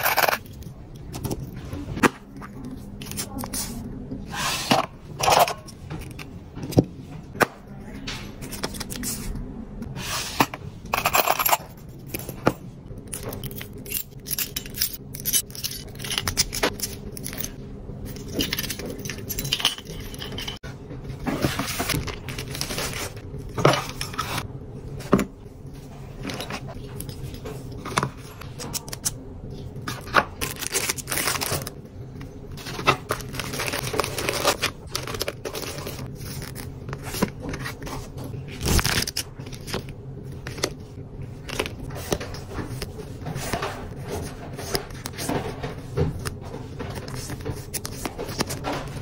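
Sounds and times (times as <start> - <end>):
paper cards rustling: 8.4 - 9.4, 32.6 - 49.0.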